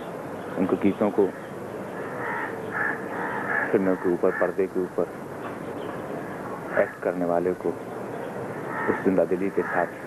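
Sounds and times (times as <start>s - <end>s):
short bird calls: 8.6s - 9.9s.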